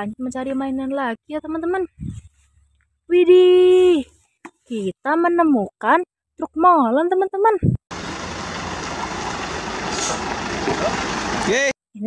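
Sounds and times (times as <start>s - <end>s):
truck diesel engine running: 7.9s - 11.7s.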